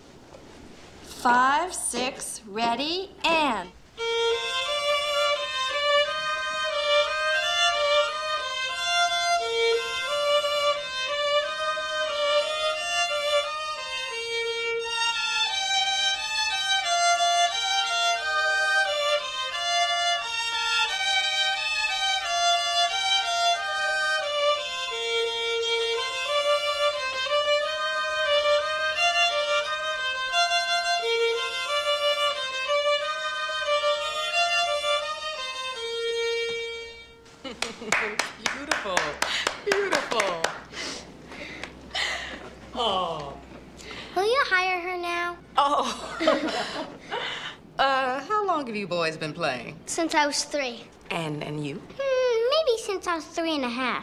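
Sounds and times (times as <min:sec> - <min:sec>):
violin held low notes: 0:04.0 - 0:37.2
violin melody with vibrato: 0:04.0 - 0:37.3.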